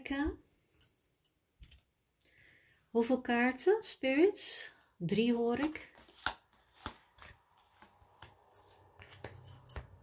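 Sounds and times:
bangles clinking: 0:08.4 - 0:10.0.

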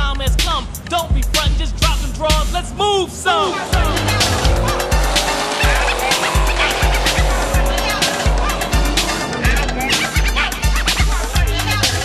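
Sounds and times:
booming bass drum beat: 0:00.0 - 0:02.8, 0:03.7 - 0:11.9
hip hop music: 0:00.0 - 0:12.0.

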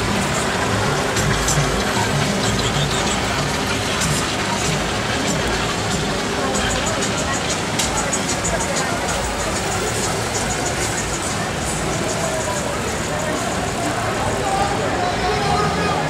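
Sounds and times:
cars rolling slowly past: 0:00.0 - 0:16.0
crowd chatter: 0:00.0 - 0:16.0.

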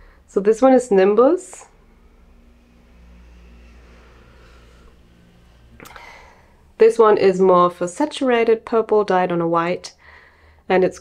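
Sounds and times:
distant motor rumble: 0:00.0 - 0:09.7.

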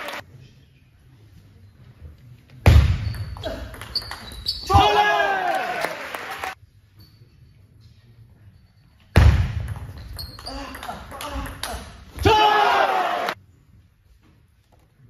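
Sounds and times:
loud shout: 0:04.6 - 0:06.6, 0:12.2 - 0:13.4.

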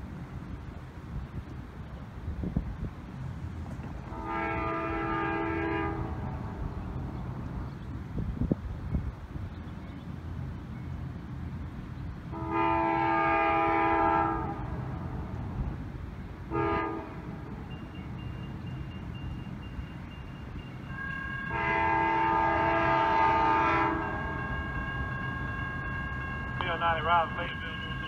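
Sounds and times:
train air horn blasts: 0:04.1 - 0:06.4, 0:12.3 - 0:14.7, 0:16.5 - 0:17.3, 0:20.9 - 0:28.0.

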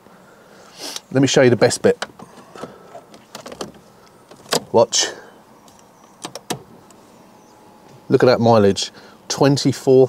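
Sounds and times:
ignition key clicks: 0:02.0 - 0:04.7, 0:05.7 - 0:07.0.

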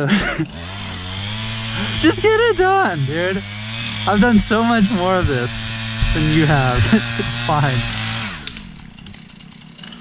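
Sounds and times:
person laughing: 0:00.0 - 0:00.8, 0:01.5 - 0:08.0
small two-stroke engine running: 0:00.0 - 0:10.0.

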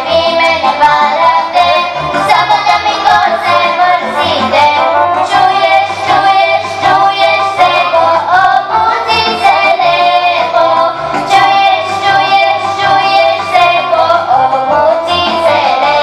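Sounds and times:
children singing: 0:00.0 - 0:16.0
instrumental accompaniment with bass: 0:00.0 - 0:16.0.

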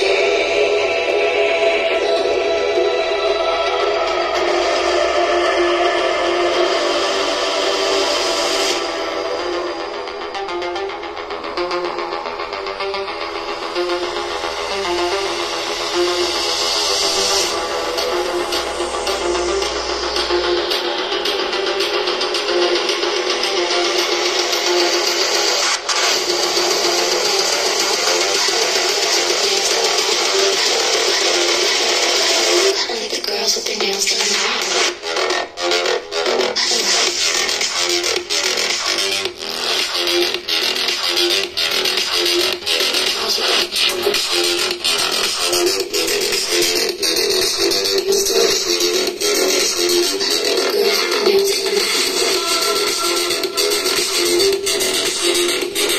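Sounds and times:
thin music from small speaker: 0:00.0 - 0:55.9.

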